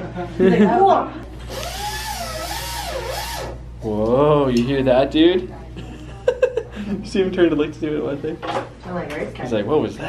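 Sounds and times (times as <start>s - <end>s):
dental handpiece whirring whine: 1.4s - 3.7s.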